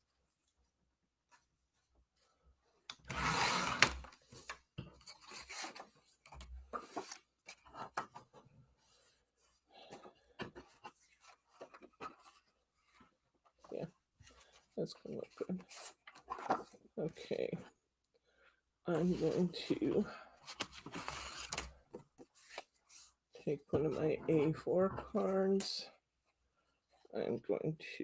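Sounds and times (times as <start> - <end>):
paper trimmer cutting paper: 3.0 - 4.0.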